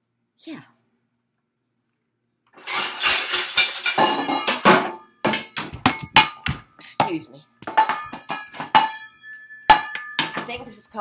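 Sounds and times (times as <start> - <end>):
metal pots and pans clattering: 2.6 - 11.0.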